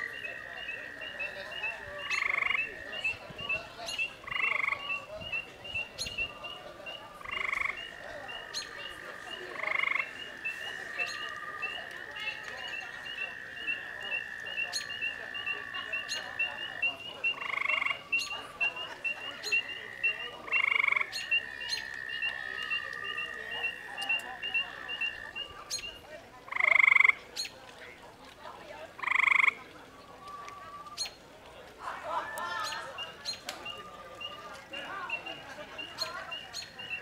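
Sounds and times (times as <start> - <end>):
frog trilling: 0.0 - 25.9, 26.5 - 27.2, 29.0 - 29.6
loud frog calls: 0.0 - 27.5, 29.0 - 29.6, 32.6 - 37.0.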